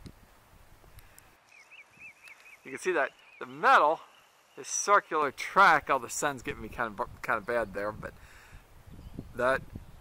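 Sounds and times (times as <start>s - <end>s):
small bird chirping: 1.4s - 5.2s.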